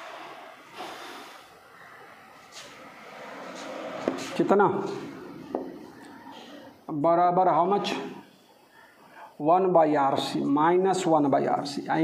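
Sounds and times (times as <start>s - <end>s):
man sniffing: 0.0s - 1.6s.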